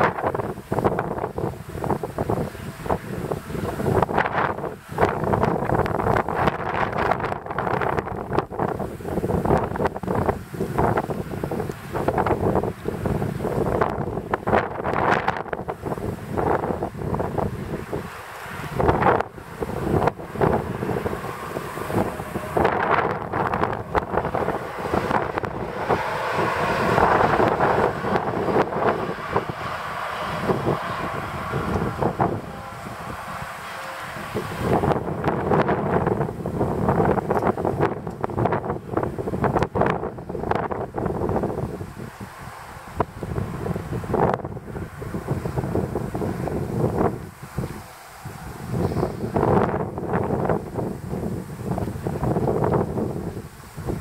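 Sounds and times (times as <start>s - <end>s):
electric train running past: 0.0s - 54.0s
wind buffeting microphone: 0.0s - 54.0s.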